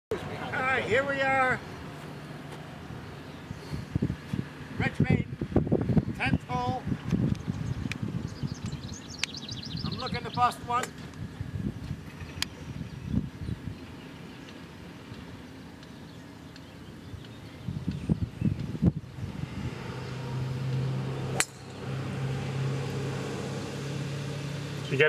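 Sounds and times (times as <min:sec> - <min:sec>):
low engine hum: 0:00.1 - 0:25.0
golf club striking ball: 0:20.7 - 0:22.1.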